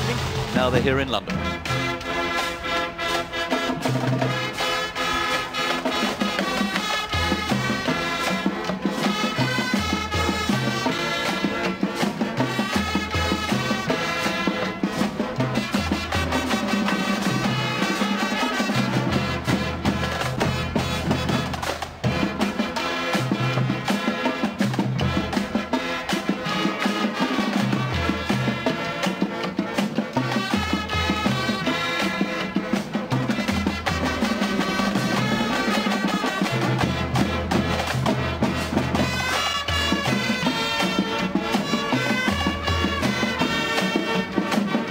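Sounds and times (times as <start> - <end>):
marching band playing: 0.0 - 44.9.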